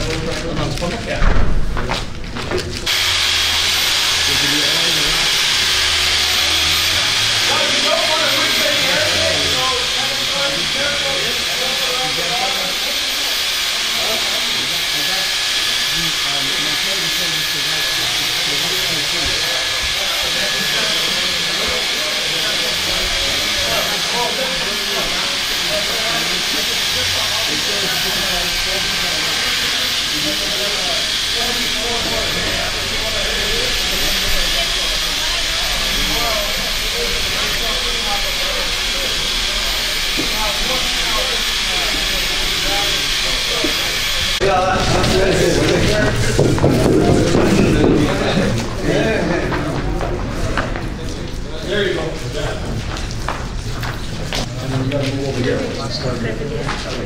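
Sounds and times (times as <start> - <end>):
faint voices: 0.0 - 57.0
paddle mixer motor whine: 2.8 - 49.1.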